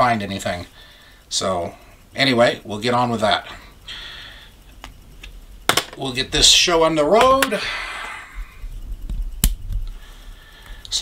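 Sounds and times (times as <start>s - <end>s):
faint low rumble: 0.0s - 11.0s.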